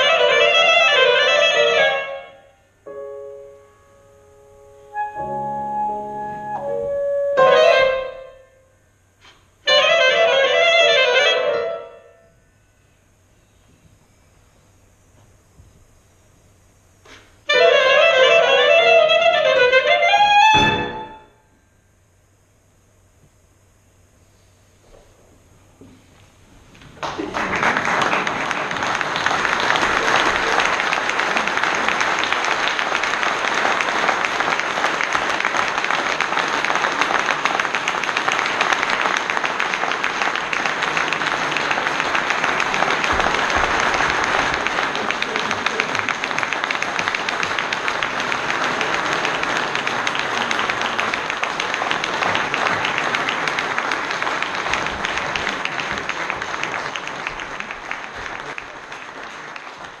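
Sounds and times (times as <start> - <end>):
audience applauding: 26.7 - 60.0.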